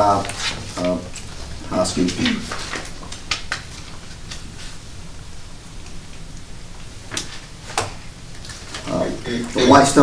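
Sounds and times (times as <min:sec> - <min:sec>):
room tone hiss: 0:00.0 - 0:10.0.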